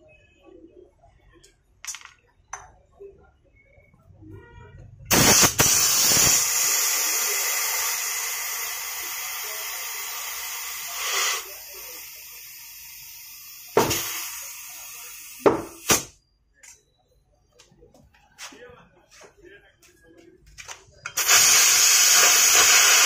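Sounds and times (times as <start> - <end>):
compressed air hissing: 5.1 - 16.2, 21.2 - 23.0.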